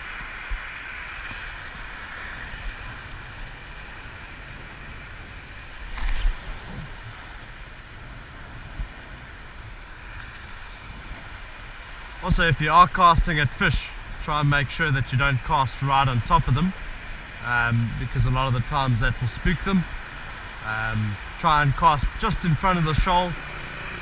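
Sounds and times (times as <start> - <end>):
sea water washing on rocky shore: 0.0 - 14.6
wind rumble on microphone: 0.0 - 24.0.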